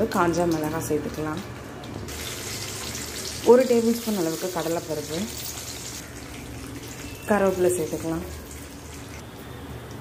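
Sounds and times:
spices sizzling in hot oil: 0:00.0 - 0:09.2.

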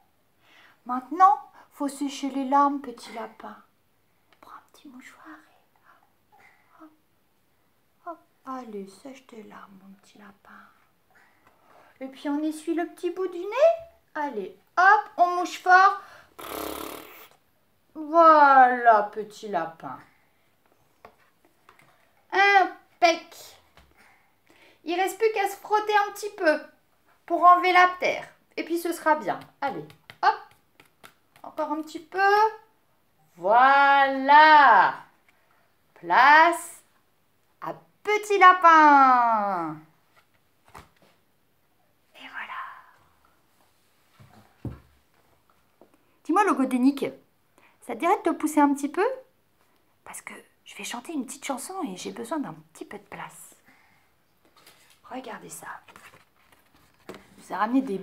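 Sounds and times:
woman whispering a word: 0:04.3 - 0:07.0, 0:42.1 - 0:43.0
woman mimicking nose blow: 0:16.4 - 0:17.4.

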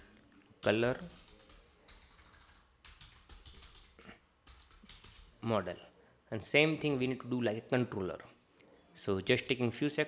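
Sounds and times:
faint keyboard typing: 0:00.0 - 0:05.6.

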